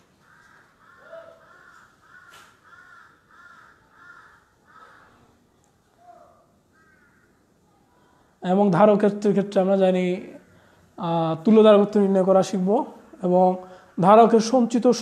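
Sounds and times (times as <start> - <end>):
bird calling faintly: 0.0 - 8.2.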